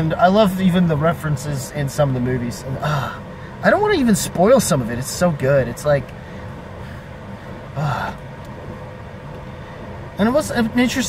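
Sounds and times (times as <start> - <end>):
faint steady hum: 0.0 - 11.0
low rumble inside car cabin: 0.0 - 11.0.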